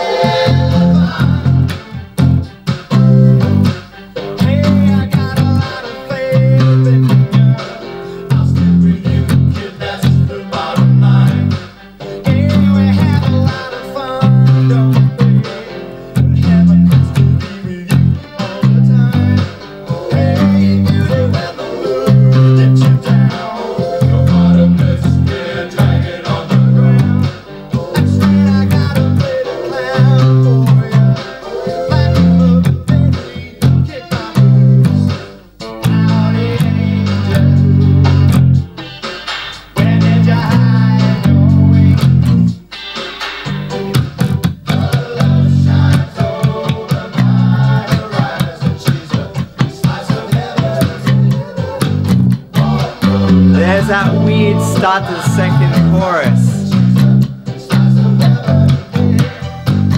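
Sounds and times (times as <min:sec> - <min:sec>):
electric bass riff: 0:00.0 - 0:31.2, 0:31.8 - 0:59.9
rock band backing: 0:00.0 - 0:59.9.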